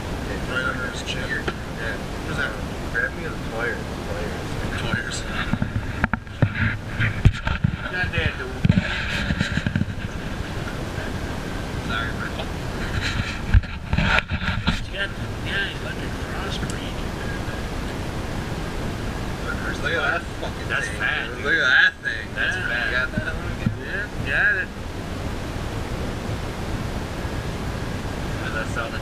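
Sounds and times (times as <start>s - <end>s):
steady rushing noise: 0.0s - 29.0s
indistinct voices: 19.2s - 24.8s
people laughing: 19.9s - 21.0s.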